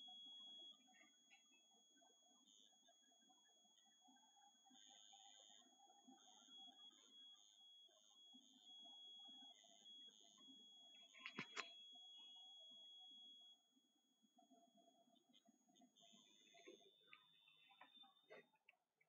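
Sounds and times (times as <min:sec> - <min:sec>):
faint high-pitched beeping tone: 0:00.0 - 0:13.7, 0:14.4 - 0:18.7.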